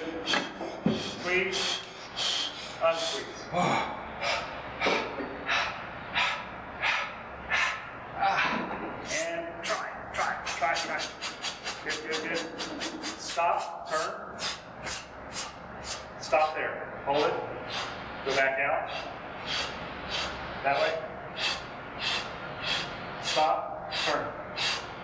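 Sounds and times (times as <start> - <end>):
man breathing hard and fast: 0.0 - 8.6, 9.6 - 16.6, 17.5 - 25.0.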